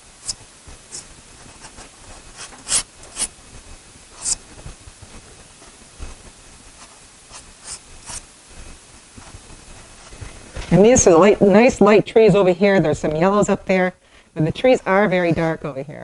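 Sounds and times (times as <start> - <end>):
pastel stick scratching paper: 0.2 - 3.3, 4.2 - 4.4, 6.8 - 8.2.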